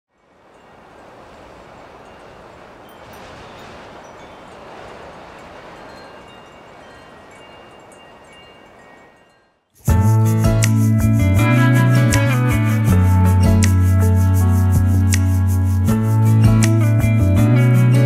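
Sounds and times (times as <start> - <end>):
wind chimes tinkling: 0.1 - 9.9
wind rushing: 0.4 - 8.9.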